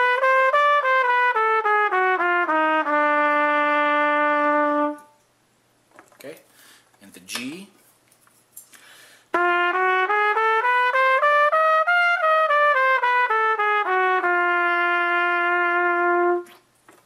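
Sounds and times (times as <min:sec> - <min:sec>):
solo trumpet playing scale: 0:00.0 - 0:05.2, 0:09.3 - 0:16.7.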